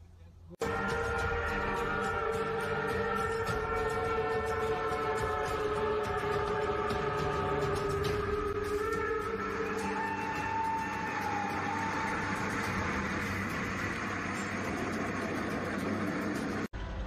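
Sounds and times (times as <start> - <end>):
train horn: 0.6 - 11.0
train running past: 0.6 - 17.0.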